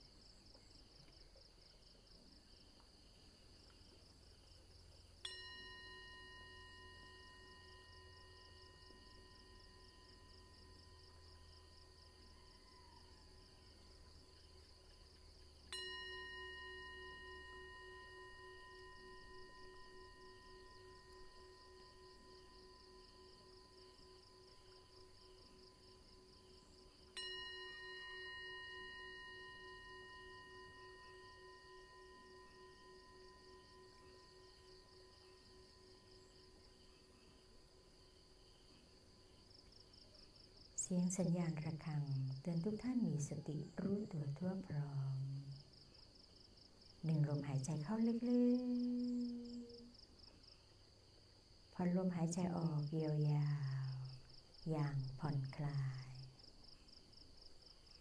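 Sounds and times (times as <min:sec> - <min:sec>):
meditation bell ringing: 0:05.2 - 0:13.8, 0:15.6 - 0:37.9.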